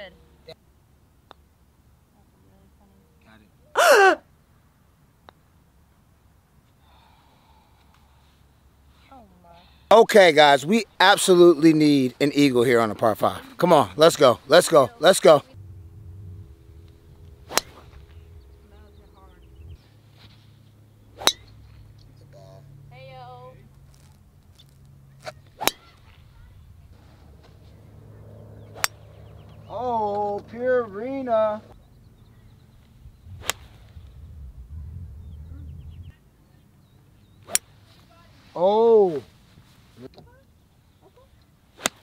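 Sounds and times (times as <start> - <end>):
low rumble: 15.4 - 22.9, 23.6 - 31.0, 31.7 - 36.2
golf driver striking ball: 15.6 - 19.7, 21.2 - 21.6, 25.6 - 26.0, 28.6 - 29.4
golf irons striking balls: 15.6 - 19.8, 20.6 - 22.1, 23.8 - 26.4, 27.2 - 30.6, 32.8 - 34.2, 37.4 - 37.8, 41.8 - 42.0.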